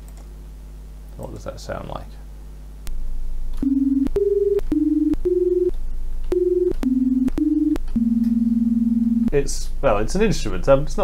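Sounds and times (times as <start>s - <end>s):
low hum: 2.6s - 10.6s
note clicks: 3.6s - 8.5s
beating sine-wave synth notes: 3.6s - 9.6s.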